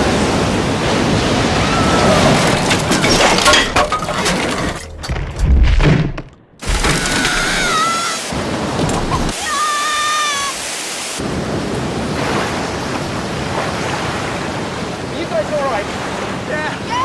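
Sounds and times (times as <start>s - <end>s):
heavy rain: 6.6s - 13.5s.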